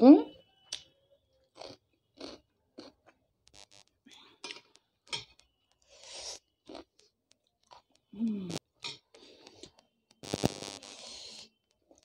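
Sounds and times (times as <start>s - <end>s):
crunchy snack being chewed: 1.4s - 3.6s, 4.4s - 8.1s.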